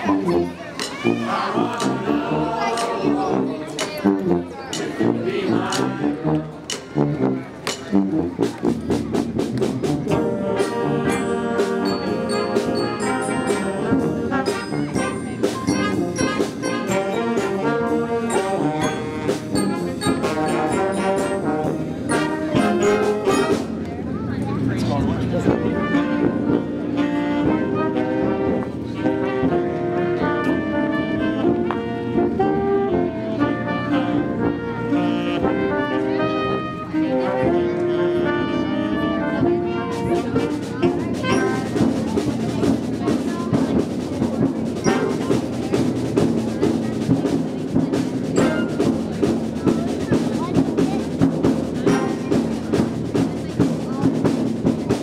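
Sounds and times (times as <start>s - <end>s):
concert band playing: 0.0s - 55.0s.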